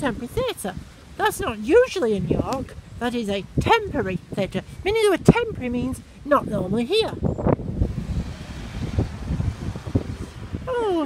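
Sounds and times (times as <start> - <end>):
wind buffeting microphone: 0.0 - 11.0
car passing slowly: 7.5 - 10.8.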